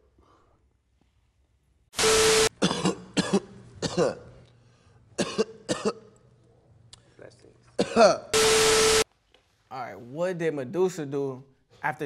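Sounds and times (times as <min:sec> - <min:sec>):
man coughing harshly: 0:02.6 - 0:04.3, 0:05.2 - 0:06.1, 0:07.8 - 0:08.3
steady hum: 0:07.8 - 0:09.0.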